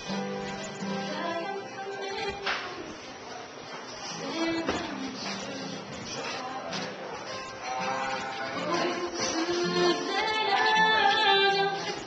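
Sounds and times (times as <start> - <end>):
acoustic guitar: 0.0 - 12.0
woman singing: 0.8 - 2.9, 4.1 - 12.0.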